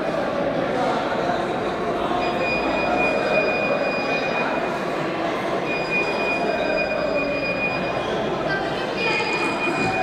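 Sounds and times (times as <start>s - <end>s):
crowd hubbub in echoing hall: 0.0s - 10.0s
thin steady high tone: 2.2s - 10.0s.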